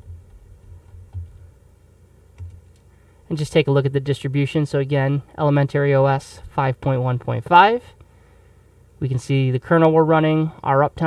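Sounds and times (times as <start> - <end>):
typing on a computer keyboard: 2.4 - 2.8.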